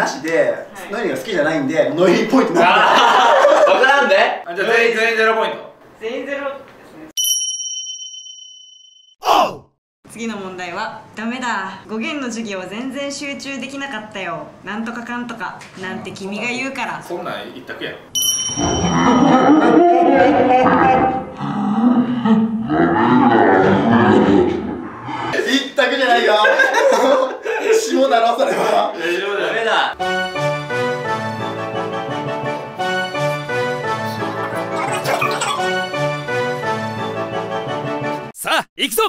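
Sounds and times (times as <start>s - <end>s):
men talking: 0.0s - 6.4s, 25.4s - 30.0s
men laughing: 2.0s - 4.1s, 25.3s - 29.8s, 34.0s - 36.0s
high bell ding: 7.2s - 9.2s, 18.2s - 19.5s
light background music: 30.0s - 38.2s.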